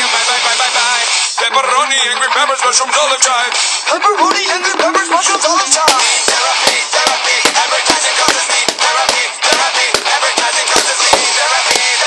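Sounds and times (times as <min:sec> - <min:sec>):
recorded song with singing: 0:00.0 - 0:12.0
drum kit playing: 0:04.2 - 0:11.8.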